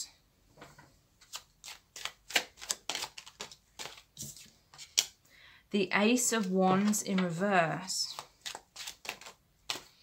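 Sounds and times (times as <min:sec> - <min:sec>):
cards being shuffled: 0:01.2 - 0:05.2, 0:08.1 - 0:10.0.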